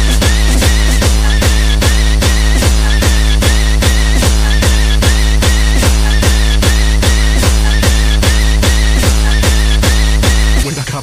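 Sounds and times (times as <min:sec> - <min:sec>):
distorted kick drum beat: 0:00.0 - 0:11.0.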